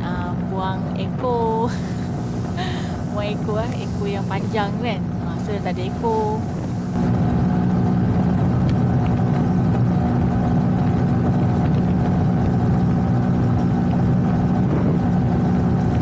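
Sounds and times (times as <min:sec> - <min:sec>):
motorcycle engine cruising: 0:00.0 - 0:16.0.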